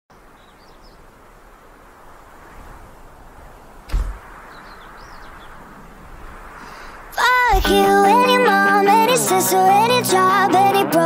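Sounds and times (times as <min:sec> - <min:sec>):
steady hiss: 0:00.1 - 0:10.9
loud thud: 0:03.8 - 0:04.7, 0:06.5 - 0:07.7.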